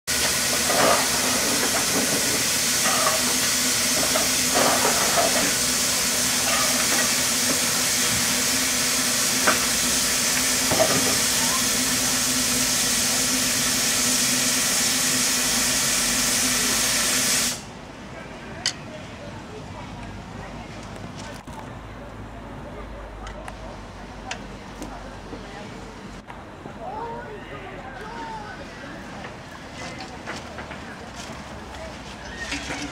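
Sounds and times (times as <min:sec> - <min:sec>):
locomotive venting steam hiss: 0:00.1 - 0:17.8.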